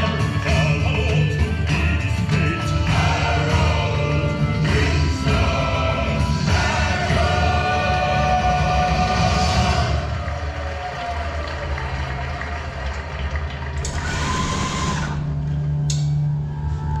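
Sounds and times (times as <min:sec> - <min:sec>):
choir music: 0:00.0 - 0:11.8.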